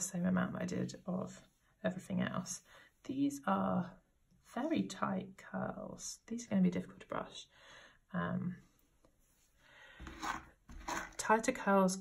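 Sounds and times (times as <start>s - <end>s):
brush picked up off table: 10.0s - 11.2s.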